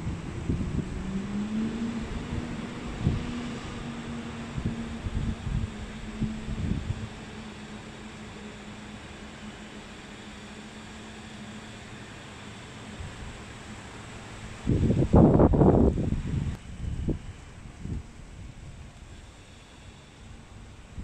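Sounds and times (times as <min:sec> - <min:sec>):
machine hum: 0:00.0 - 0:21.0.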